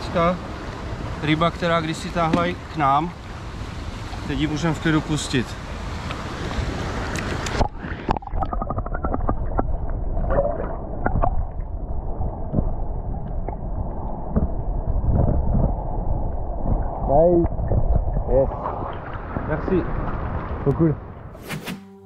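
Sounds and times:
water splashing: 2.2 - 21.3
underwater rumble: 5.6 - 21.4
underwater clicks: 7.1 - 11.7, 12.5 - 18.2.

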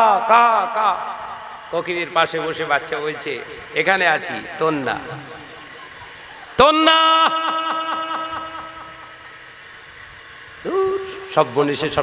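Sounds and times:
man chanting sermon: 0.0 - 5.4, 6.6 - 8.2, 10.6 - 12.0.

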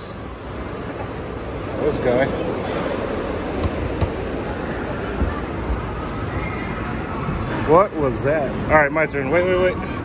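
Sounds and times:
basketballs thudding: 3.5 - 4.4
basketballs knocking on rims: 3.6 - 4.3.

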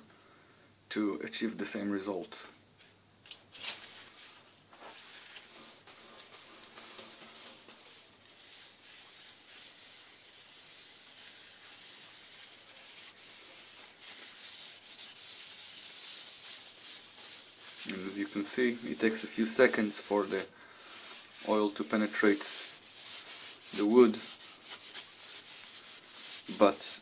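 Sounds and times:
paper towel rubbing spinning wood: 4.8 - 27.0.

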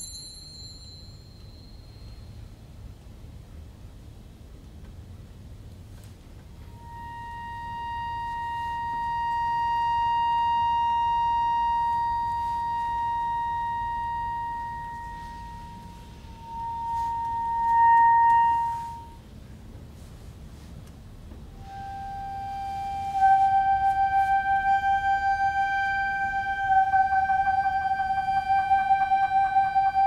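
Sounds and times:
high reed instrument note: 6.7 - 19.2, 21.6 - 30.0.

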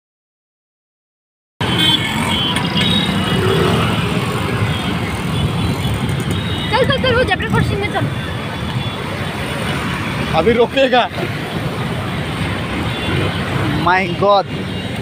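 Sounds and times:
tyres on wet road: 1.6 - 15.0
vehicle engines: 1.6 - 15.0.

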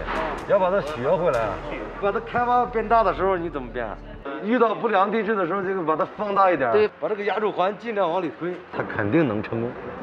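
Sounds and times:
man speaking: 0.0 - 9.5.

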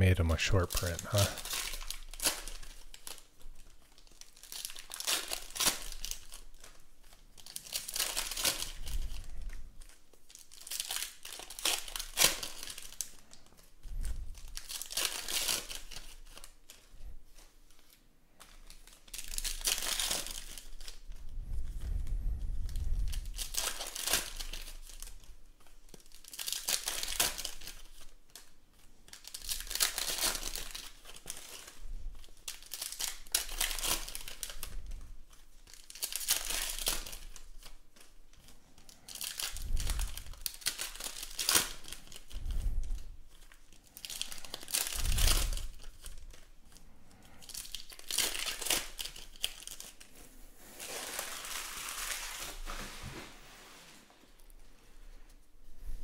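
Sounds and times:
foil wrappers crinkling and tearing: 0.5 - 53.1.

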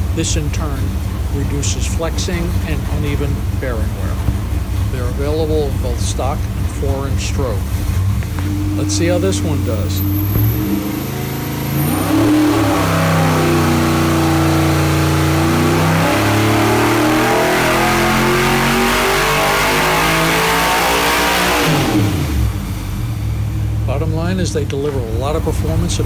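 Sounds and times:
race engine revving: 0.0 - 26.0.

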